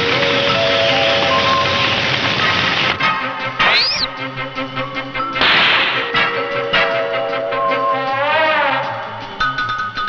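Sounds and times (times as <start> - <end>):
background music: 0.0 - 10.0
cartoon whoosh: 3.6 - 4.1.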